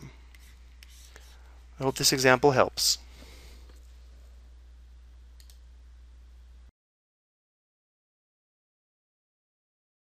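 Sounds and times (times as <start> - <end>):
steady low hum: 0.0 - 6.7
computer mouse clicks: 5.4 - 5.6.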